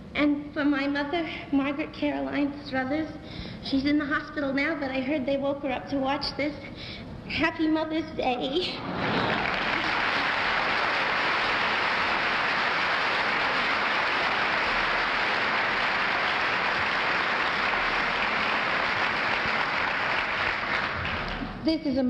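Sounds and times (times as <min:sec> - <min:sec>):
large audience applauding: 0:08.8 - 0:21.5.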